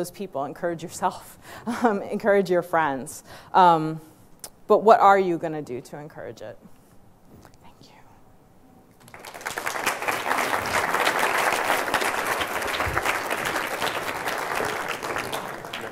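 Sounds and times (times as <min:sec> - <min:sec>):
audience applause: 0:09.0 - 0:15.9.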